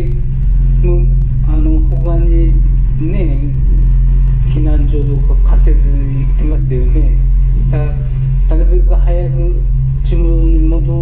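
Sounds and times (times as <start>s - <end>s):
steady low drone: 0.0s - 11.0s
person speaking: 4.4s - 11.0s.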